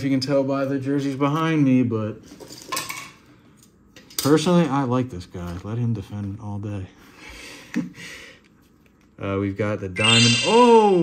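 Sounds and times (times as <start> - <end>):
faint card handling noise: 8.4 - 9.2.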